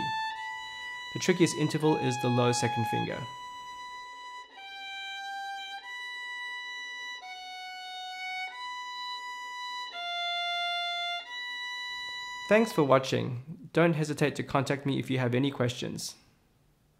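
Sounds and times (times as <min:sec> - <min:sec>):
solo violin held notes: 0:00.0 - 0:13.4.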